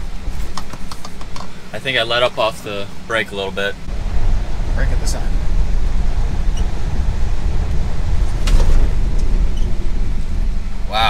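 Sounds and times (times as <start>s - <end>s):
tyre and road rumble in car: 0.0s - 11.0s.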